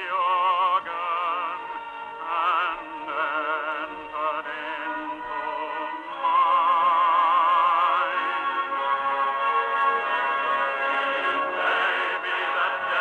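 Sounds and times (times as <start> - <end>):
baritone singing with vibrato: 0.0 - 13.0
chorus singing: 0.0 - 13.0
organ and orchestra: 0.0 - 13.0.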